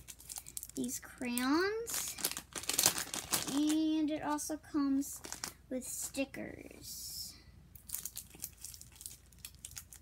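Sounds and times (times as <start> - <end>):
packaging crinkling: 0.0 - 4.0, 5.2 - 5.6, 7.8 - 10.0.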